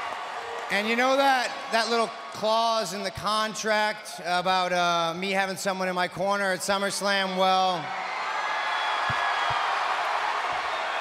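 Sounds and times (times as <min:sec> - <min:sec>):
arena crowd cheering: 0:00.0 - 0:05.2, 0:06.2 - 0:11.0.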